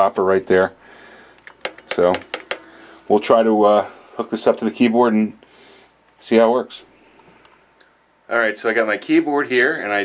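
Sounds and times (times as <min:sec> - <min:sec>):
sustain pedal clicks and taps: 0:01.4 - 0:02.7.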